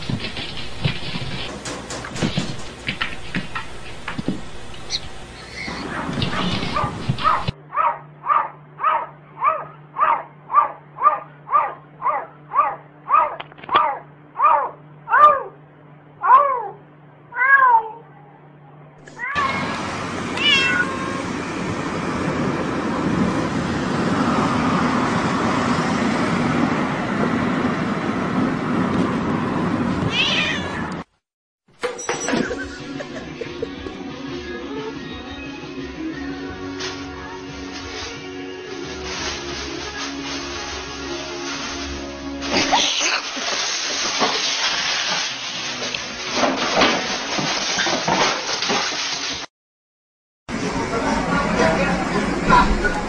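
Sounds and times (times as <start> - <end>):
steady noisy background: 0.0 - 31.0, 50.5 - 53.0
cat meowing: 16.2 - 18.1, 19.2 - 19.7, 20.3 - 21.2, 30.1 - 31.0.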